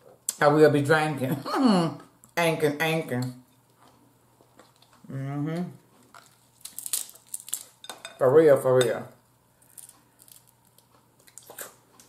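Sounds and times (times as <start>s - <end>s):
crab shells cracking: 6.1s - 7.8s, 9.6s - 11.8s.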